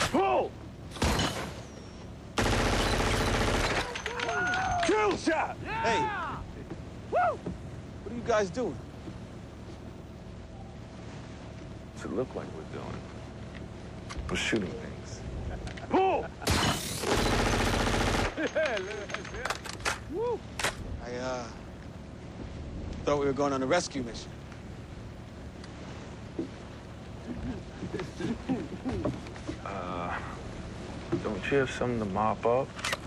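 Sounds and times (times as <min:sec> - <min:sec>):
rapid rifle fire: 0:02.4 - 0:04.0, 0:16.5 - 0:18.4
submachine gun automatic burst: 0:02.4 - 0:04.0, 0:16.5 - 0:18.4
sharp cracks: 0:02.4 - 0:05.0
men shouting: 0:03.8 - 0:07.4.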